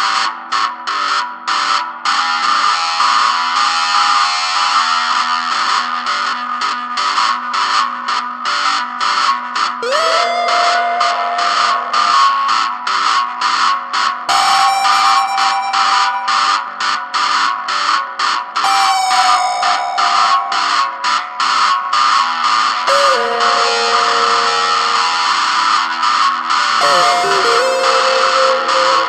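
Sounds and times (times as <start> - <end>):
electric guitar sliding notes: 9.8 - 17.3, 18.6 - 29.0.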